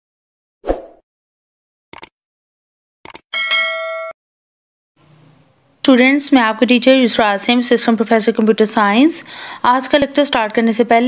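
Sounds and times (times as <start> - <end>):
bell chime ringing: 3.4 - 4.2.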